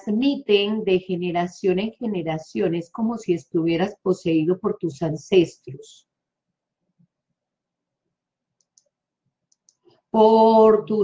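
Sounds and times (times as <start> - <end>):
faint clicks: 8.6 - 9.9.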